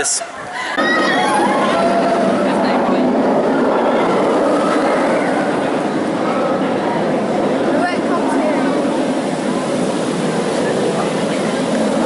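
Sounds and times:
roller coaster wheels on rails: 0:00.0 - 0:12.0.

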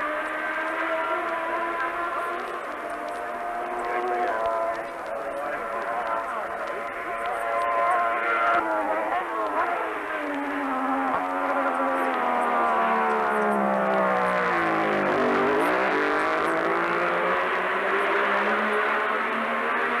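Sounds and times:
racing motorcycle engine revving: 0:00.0 - 0:20.0.

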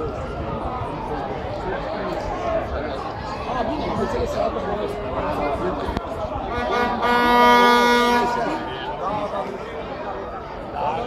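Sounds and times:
people chattering: 0:00.0 - 0:11.0
horn blowing long note: 0:06.5 - 0:08.6.

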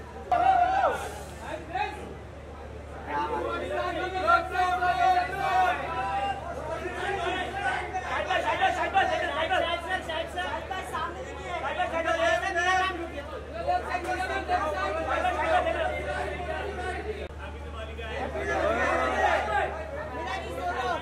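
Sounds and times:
people chattering and calling out: 0:00.0 - 0:21.0.

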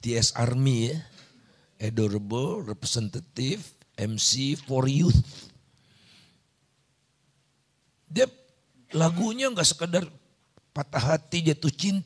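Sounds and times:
man speaking through a microphone: 0:01.8 - 0:05.5, 0:08.9 - 0:10.1.

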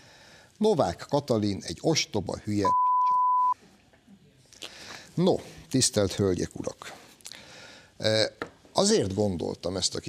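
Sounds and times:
censor bleep tone: 0:02.6 - 0:03.6.

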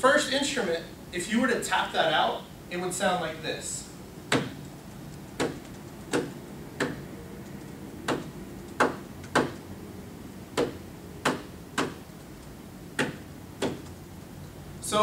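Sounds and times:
hand tapping a rhythm: 0:04.3 - 0:09.7, 0:10.5 - 0:14.0.

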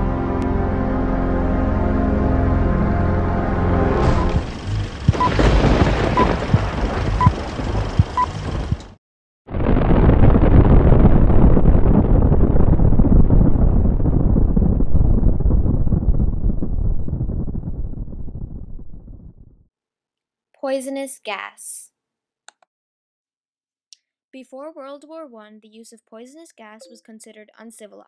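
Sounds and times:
explosion rumble: 0:03.9 - 0:19.7
crackling noise: 0:04.0 - 0:19.6
short beeps: 0:05.2 - 0:05.4.

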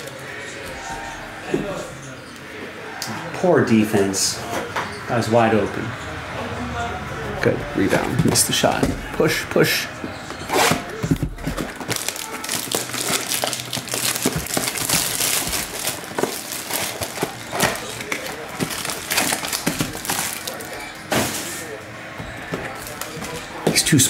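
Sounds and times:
cardboard box tearing: 0:10.5 - 0:21.5
foil wrappers crinkling: 0:11.0 - 0:21.8, 0:22.4 - 0:23.9.

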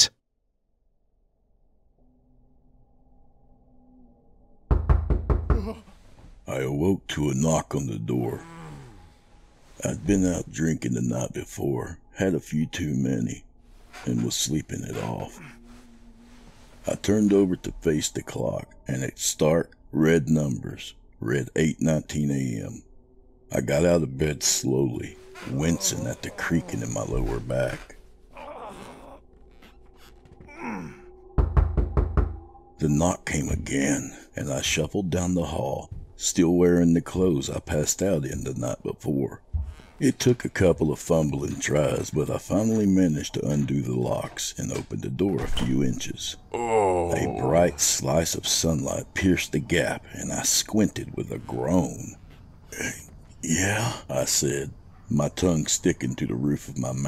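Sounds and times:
knocking on a door: 0:04.7 - 0:05.8, 0:31.4 - 0:32.5
man groaning: 0:46.5 - 0:47.6.

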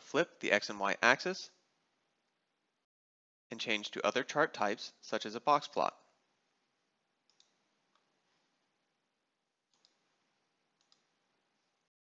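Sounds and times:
computer mouse clicks: 0:07.3 - 0:08.1, 0:09.7 - 0:10.0, 0:10.8 - 0:11.7.

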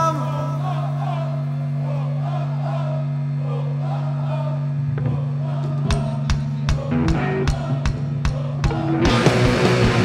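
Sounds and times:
punk rock band droning: 0:00.0 - 0:10.0
crowd voices: 0:00.3 - 0:09.9.

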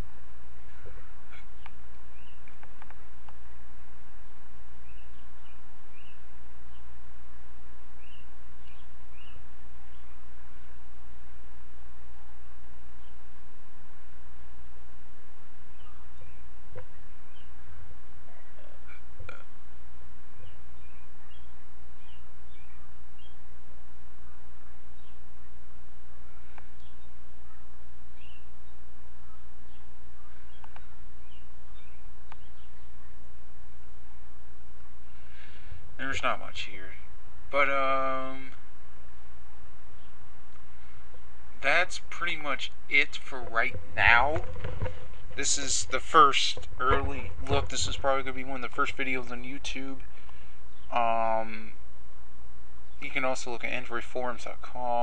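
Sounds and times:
faint bird chirps: 0:00.0 - 0:51.9
recording setup hum and hiss: 0:00.0 - 0:55.0.

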